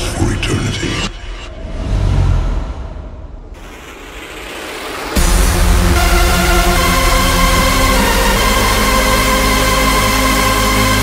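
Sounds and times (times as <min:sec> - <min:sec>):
rising noise sweep: 0:01.2 - 0:11.0.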